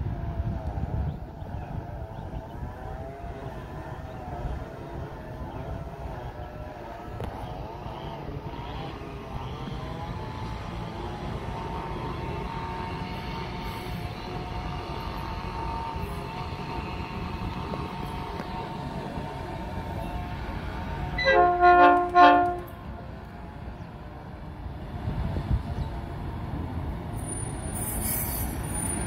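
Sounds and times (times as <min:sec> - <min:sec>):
diesel locomotive rumble: 0:00.0 - 0:29.0
locomotive horn blasts: 0:21.0 - 0:22.8.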